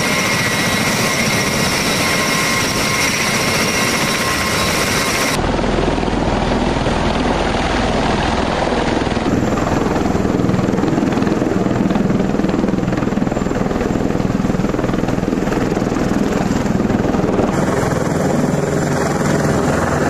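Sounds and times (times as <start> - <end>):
aircraft engines and rotor beat: 0.0 - 20.0.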